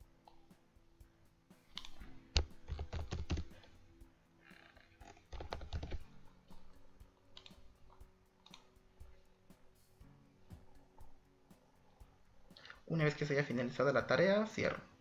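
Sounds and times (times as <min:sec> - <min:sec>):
typing on computer keyboard: 0:01.8 - 0:03.7, 0:05.1 - 0:06.1.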